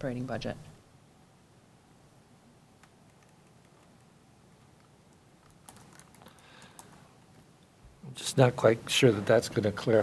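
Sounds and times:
laptop keyboard typing clicks: 2.8s - 4.1s, 4.8s - 6.9s.

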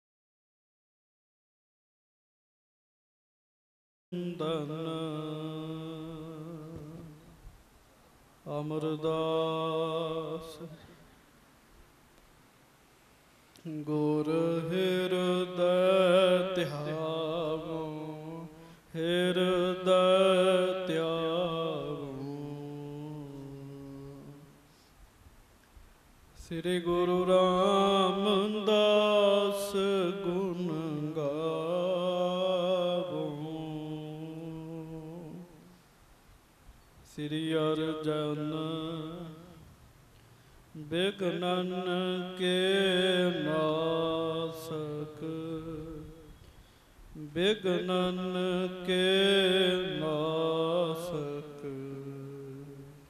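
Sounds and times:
man chanting verses: 13.7s - 24.5s, 40.8s - 46.3s, 47.2s - 53.0s.

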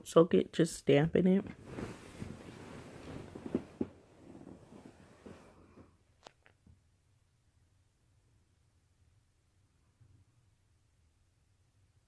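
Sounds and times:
hands rustling through hair: 1.6s - 5.5s.

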